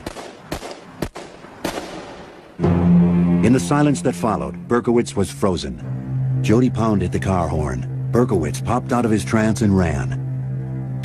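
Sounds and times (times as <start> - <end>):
revolver gunshots with echo: 0.0 - 2.6.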